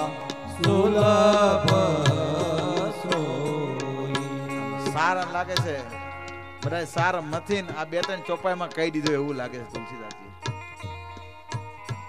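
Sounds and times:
person singing devotional song: 0.0 - 6.2
held accompaniment notes: 0.0 - 12.0
sharp percussion strikes: 0.0 - 12.0.

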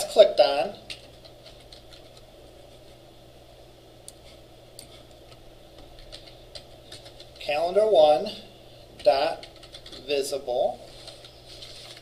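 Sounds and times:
low room hum: 0.0 - 12.0
computer keyboard typing: 0.8 - 2.3, 4.8 - 7.6, 9.0 - 10.1.

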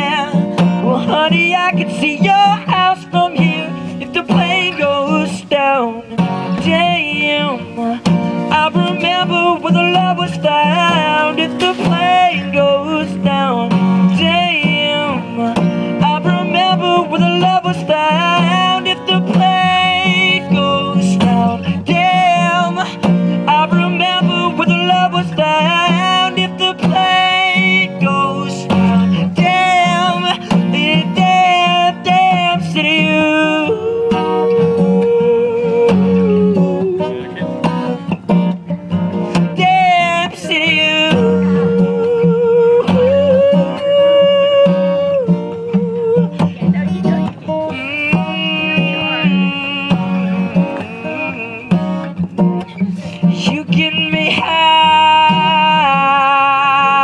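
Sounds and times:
man singing: 0.0 - 57.0
strummed acoustic guitar: 0.0 - 57.0.

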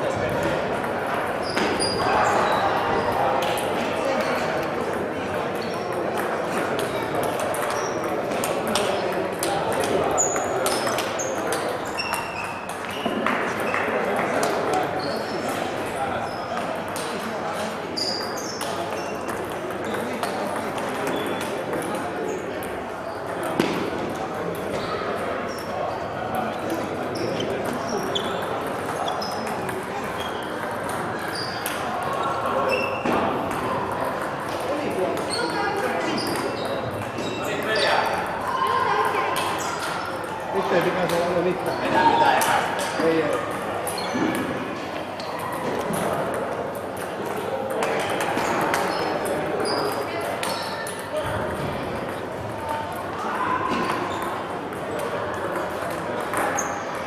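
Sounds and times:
murmur of voices: 0.0 - 57.0.

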